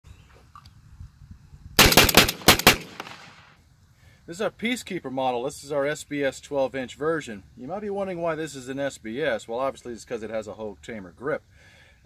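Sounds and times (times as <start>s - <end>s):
rapid shotgun shots with echo: 1.8s - 3.4s.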